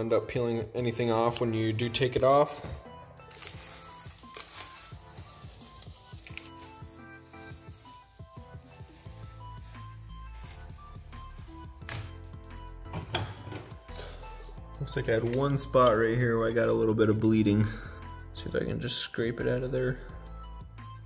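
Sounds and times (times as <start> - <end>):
background music with held notes: 0.0 - 21.0
tape being peeled off wood: 3.3 - 11.0.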